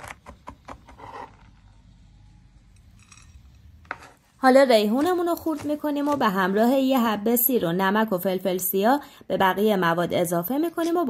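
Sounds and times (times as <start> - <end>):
knife scraping cutting board: 0.8 - 1.6, 5.0 - 6.4.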